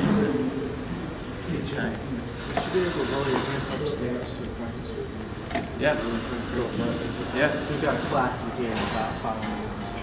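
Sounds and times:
cordless drill running: 2.4s - 3.7s, 5.9s - 8.3s.

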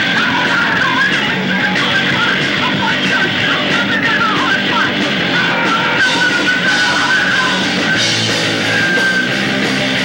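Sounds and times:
distorted punk rock band: 0.0s - 10.0s.

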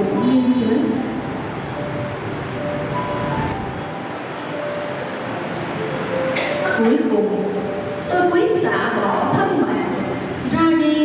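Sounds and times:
soft slow background music: 0.0s - 11.0s
steady hiss: 0.0s - 11.0s.

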